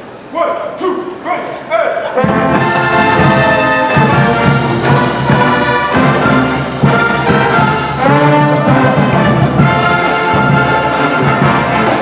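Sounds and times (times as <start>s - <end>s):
marching brass band playing: 2.0s - 12.0s.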